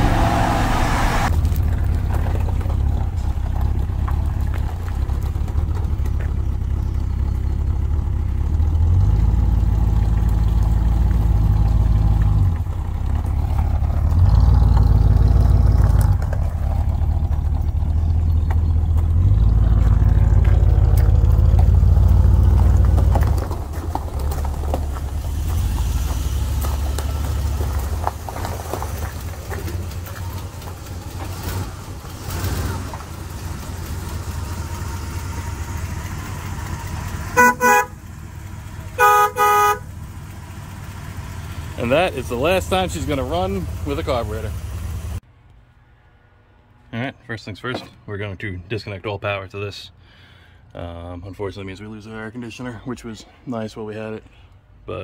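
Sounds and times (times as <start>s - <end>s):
engine running: 0.0s - 45.2s
vehicle horn blasts: 37.3s - 38.0s, 39.0s - 39.9s.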